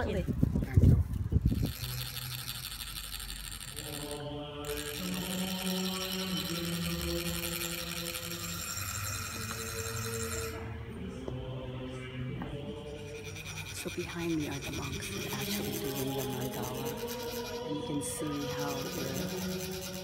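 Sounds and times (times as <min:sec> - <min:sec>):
deep low chanting voices: 0:00.0 - 0:20.0.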